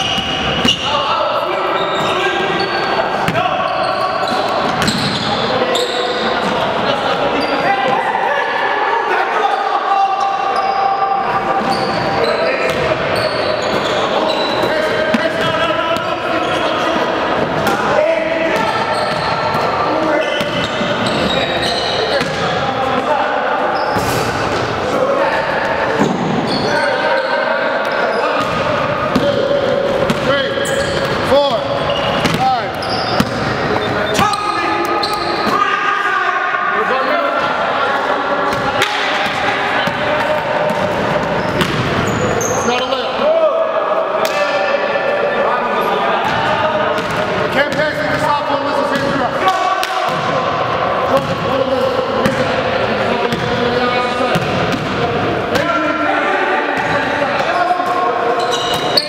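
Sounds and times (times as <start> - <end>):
sneakers squeaking: 0.0 - 8.1, 9.5 - 35.7, 37.0 - 43.2, 46.2 - 55.6, 56.8 - 59.0.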